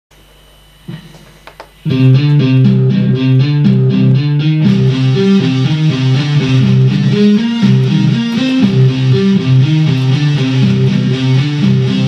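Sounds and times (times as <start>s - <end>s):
amplifier hum: 0.2s - 12.0s
electric guitar playing: 1.8s - 12.0s
guitar pick clicks: 7.1s - 10.6s.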